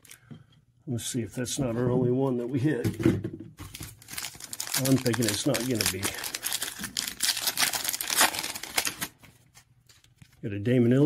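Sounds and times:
plastic wrapper crinkling and tearing: 0:03.7 - 0:09.3.

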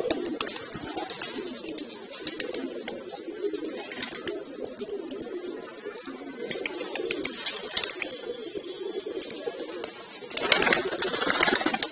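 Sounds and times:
pigeons cooing: 0:00.0 - 0:11.9.

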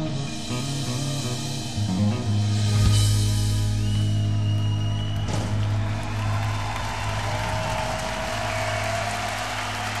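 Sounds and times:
low steady stage hum: 0:02.3 - 0:10.0
audience applauding: 0:04.0 - 0:10.0.

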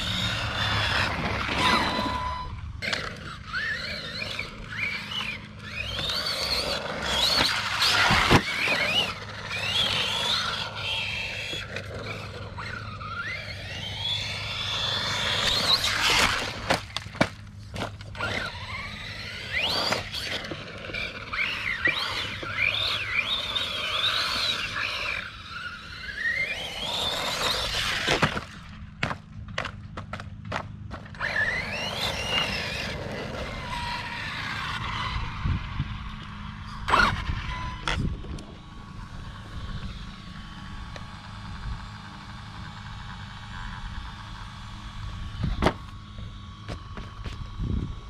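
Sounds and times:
electric motors whining: 0:00.0 - 0:48.0
steady low hum: 0:00.0 - 0:48.0.

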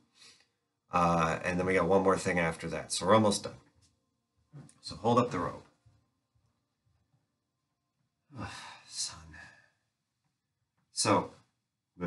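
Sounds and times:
man speaking: 0:00.9 - 0:03.7, 0:04.5 - 0:05.8, 0:08.3 - 0:09.6, 0:10.9 - 0:12.0.

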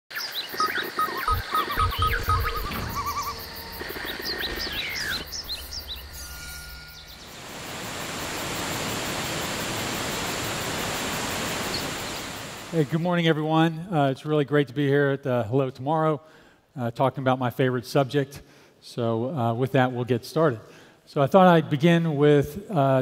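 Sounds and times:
chirping gliding electronic blips: 0:00.1 - 0:07.6
deep thumps: 0:01.3 - 0:06.9
rushing waterfall noise: 0:04.6 - 0:13.0.

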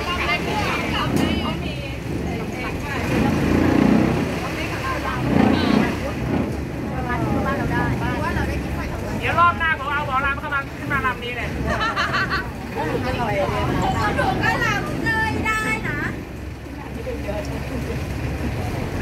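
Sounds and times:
boat engine running: 0:00.0 - 0:19.0
passengers talking: 0:00.0 - 0:19.0.

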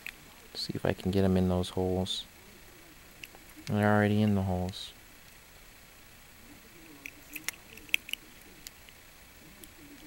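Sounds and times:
small toy parts clicking: 0:07.0 - 0:09.0.

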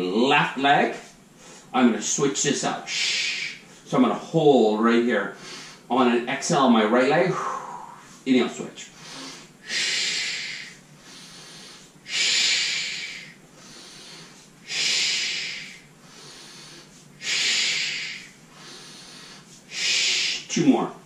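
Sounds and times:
quiet inhales: 0:01.0 - 0:01.8, 0:02.9 - 0:04.0, 0:05.3 - 0:05.9, 0:07.3 - 0:20.6
man exhaling forcefully: 0:07.3 - 0:08.2, 0:09.0 - 0:20.5.

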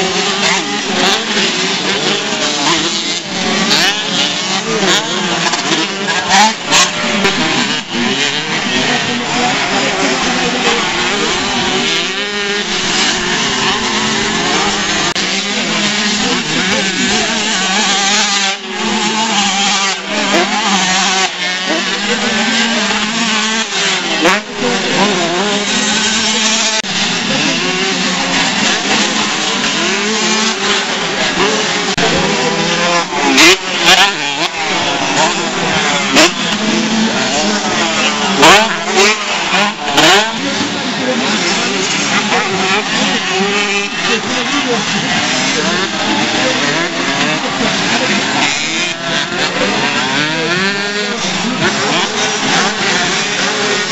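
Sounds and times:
motocross bikes revving: 0:00.0 - 0:53.9.

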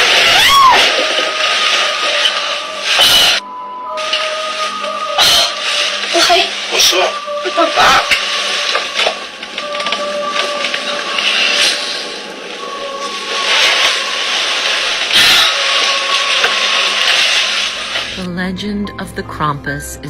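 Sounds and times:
static hiss and crackle: 0:00.0 - 0:03.4, 0:04.0 - 0:18.4.

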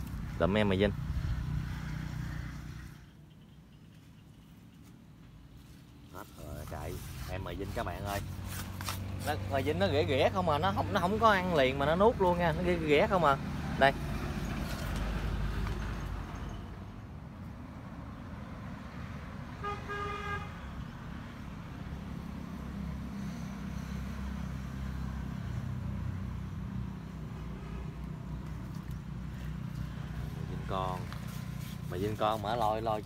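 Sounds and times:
horn toot: 0:19.6 - 0:20.6.

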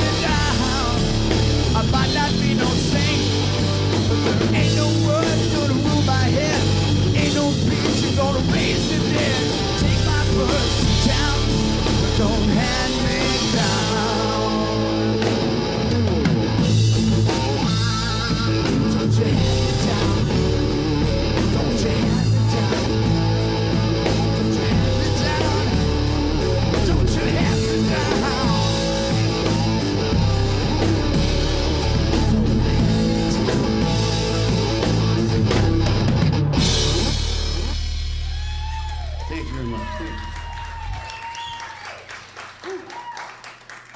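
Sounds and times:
drum kit and cymbals: 0:00.0 - 0:39.2
bass guitar: 0:00.0 - 0:41.4
electric guitar: 0:00.0 - 0:41.4.

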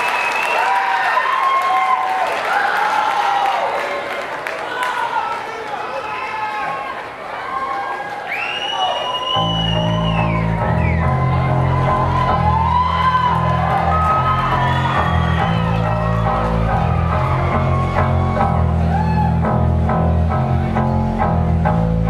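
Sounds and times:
audience cheering and whistling: 0:00.0 - 0:03.8, 0:07.5 - 0:19.8
rock band guitar and bass riff: 0:09.4 - 0:22.0.

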